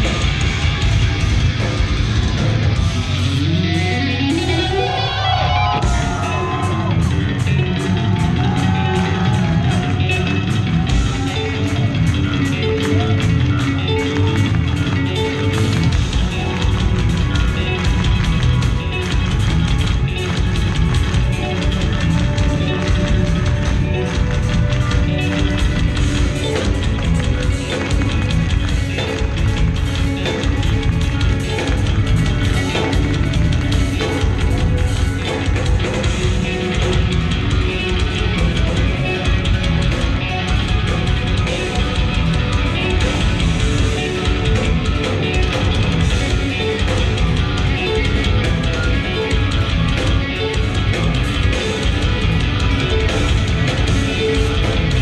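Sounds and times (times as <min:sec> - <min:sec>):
drums and cymbals: 0:00.0 - 0:04.9, 0:05.7 - 0:14.7
bass guitar: 0:00.0 - 0:55.0
electric guitar lines: 0:00.0 - 0:55.0.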